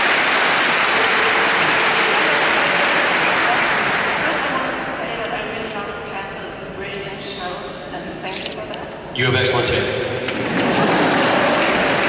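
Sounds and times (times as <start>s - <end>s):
indistinct voices in a hall: 0.0s - 12.0s
camera shutter clicks: 8.3s - 8.6s.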